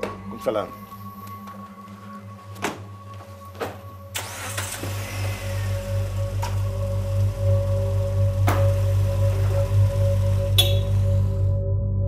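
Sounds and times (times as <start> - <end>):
background music: 0.0 - 12.0
car engine starting and running: 2.5 - 12.0.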